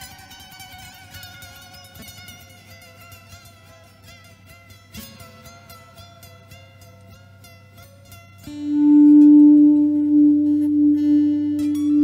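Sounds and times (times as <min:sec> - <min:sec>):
sustained electric guitar note: 0:08.7 - 0:12.0.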